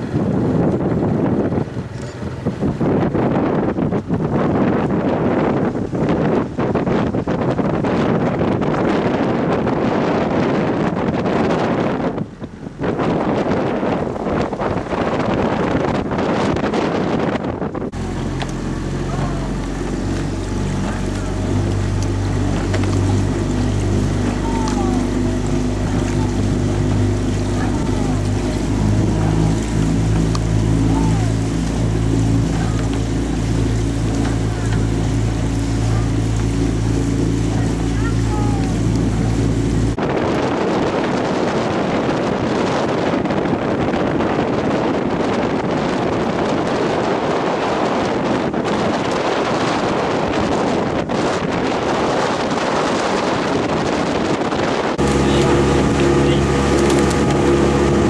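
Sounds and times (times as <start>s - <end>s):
boat motor humming: 0.0s - 58.0s
wind buffeting microphone: 0.0s - 58.0s.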